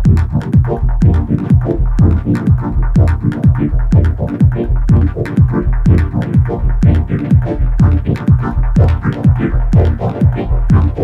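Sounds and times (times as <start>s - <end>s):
deep kick drum: 0.0s - 11.0s
high percussion ticks: 0.0s - 11.0s
steady low bass: 0.0s - 11.0s.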